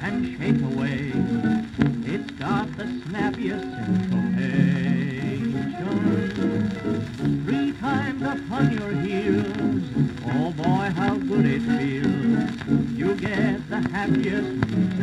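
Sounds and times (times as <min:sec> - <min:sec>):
dance band music on old record: 0:00.0 - 0:15.0
record surface noise: 0:00.0 - 0:15.0.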